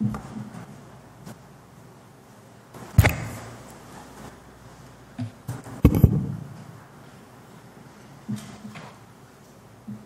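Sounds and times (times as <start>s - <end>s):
sharp thump: 3.0s - 3.4s.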